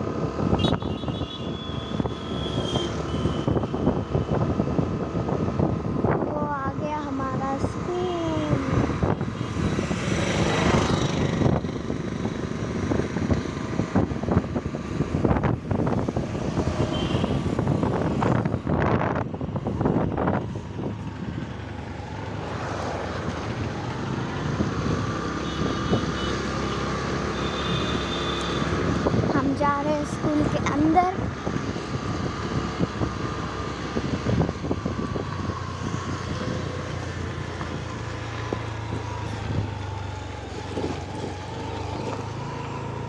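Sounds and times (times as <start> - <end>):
road and wind noise: 0.0 - 43.0.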